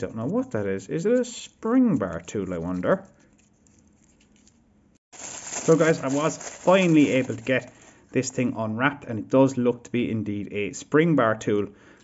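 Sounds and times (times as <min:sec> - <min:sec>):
paper wrapping rustling: 0:03.1 - 0:08.1.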